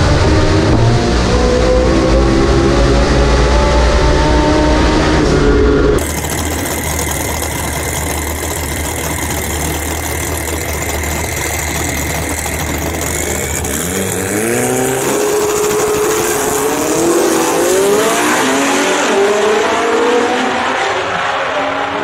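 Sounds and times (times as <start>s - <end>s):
turbocharged engine idling and revving: 0.0s - 22.0s.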